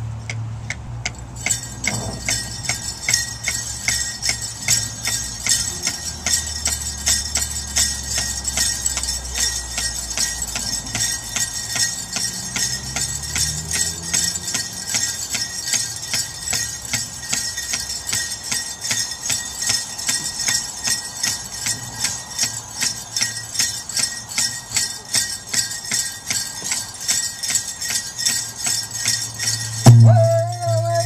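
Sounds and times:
bells jingling on a beat: 0.0 - 31.0
hand drum beating: 29.8 - 31.0
high singing voice: 29.8 - 31.0.

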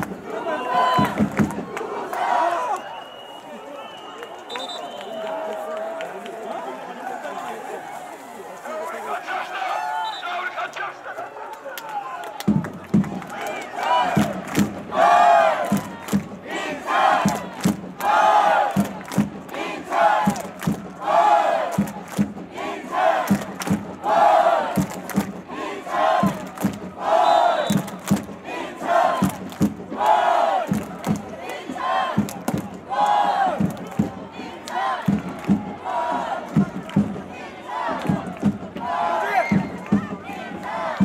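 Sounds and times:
football crowd chanting: 0.0 - 3.0, 12.5 - 41.0
drum beat: 0.8 - 1.7, 12.5 - 41.0.

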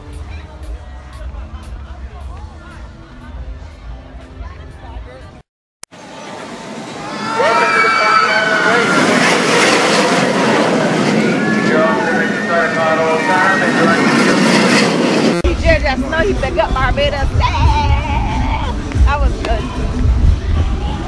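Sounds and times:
roller coaster train on track: 6.0 - 21.0
riders screaming: 7.0 - 14.2.

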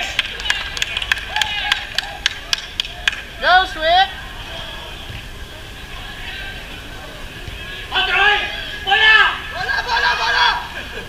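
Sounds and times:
hand claps: 0.0 - 3.3
shouts of encouragement: 0.0 - 5.0, 7.7 - 10.9.

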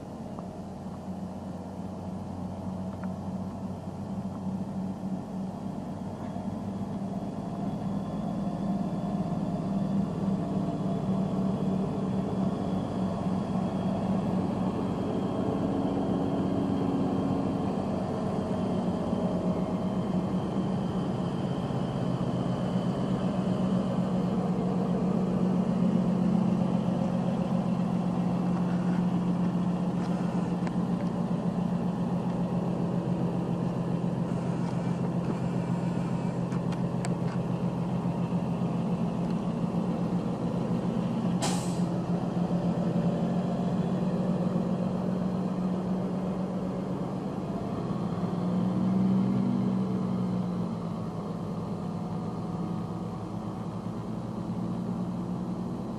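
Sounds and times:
diesel engine running under load: 0.0 - 55.9
short sharp air hiss: 41.4 - 41.9.

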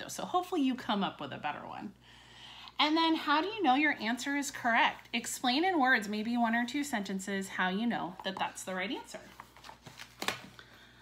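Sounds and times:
paper rustling: 9.2 - 10.8.

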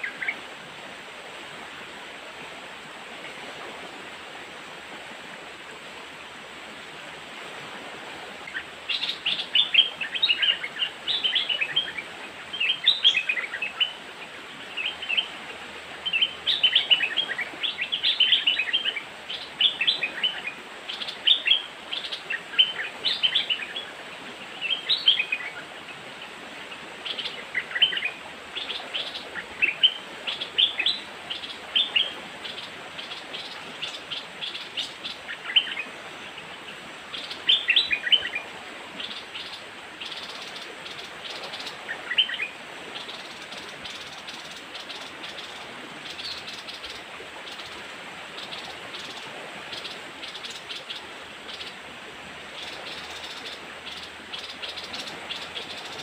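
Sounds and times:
faint steady hiss: 0.0 - 56.0
birds chirping: 52.6 - 56.0.

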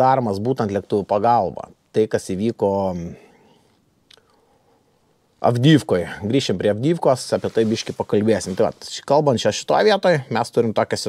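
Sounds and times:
man speaking: 0.0 - 3.3, 5.4 - 11.0.

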